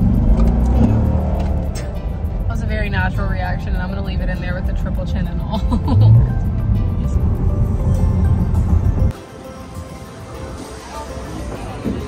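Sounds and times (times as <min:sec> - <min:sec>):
car engine accelerating: 0:00.0 - 0:09.1
background music: 0:00.0 - 0:12.0.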